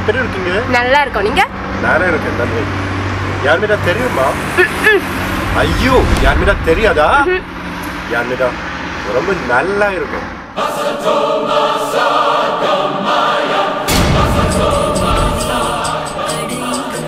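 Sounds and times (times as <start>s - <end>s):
street traffic noise: 0.0s - 17.0s
low rumble: 5.3s - 7.6s, 13.9s - 16.6s.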